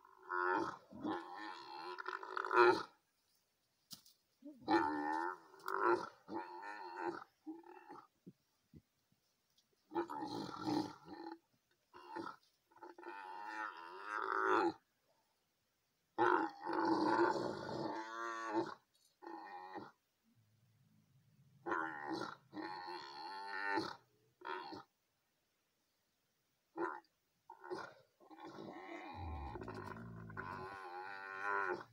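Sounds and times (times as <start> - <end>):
camels calling: 29.2 - 31.9.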